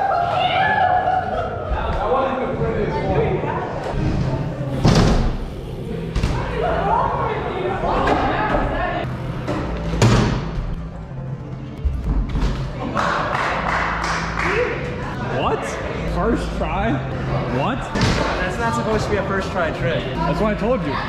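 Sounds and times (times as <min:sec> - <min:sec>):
bike wheels thudding on ramps: 0:03.9 - 0:06.8.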